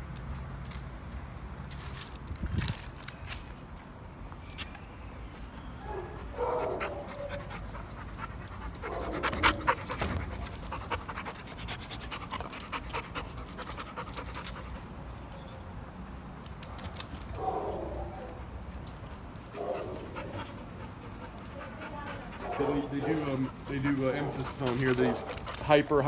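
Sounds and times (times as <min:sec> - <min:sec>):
puppy panting: 0:06.4 - 0:14.9, 0:19.0 - 0:26.0.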